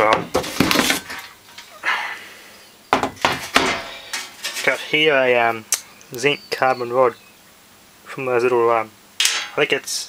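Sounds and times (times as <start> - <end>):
hard objects knocking on wood: 2.9 - 3.9.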